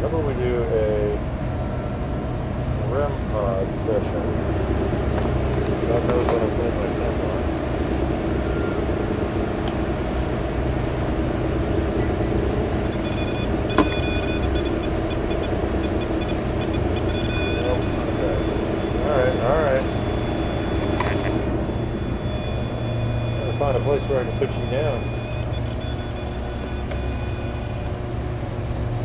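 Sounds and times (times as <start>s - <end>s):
steady background hum: 0.0s - 29.0s
indistinct voice: 2.8s - 4.3s, 5.8s - 7.4s, 17.6s - 20.0s, 23.4s - 25.2s.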